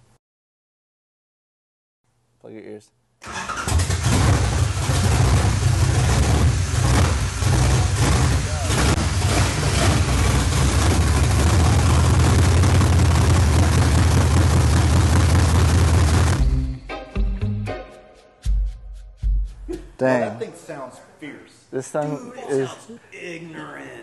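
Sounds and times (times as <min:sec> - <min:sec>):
engine induction noise: 0:03.2 - 0:16.7
loud lopey engine running: 0:03.7 - 0:16.7.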